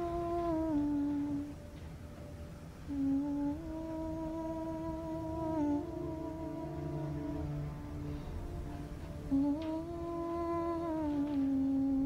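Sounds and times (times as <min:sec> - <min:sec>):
woman humming: 0:00.0 - 0:01.6, 0:02.9 - 0:07.5, 0:09.3 - 0:12.0.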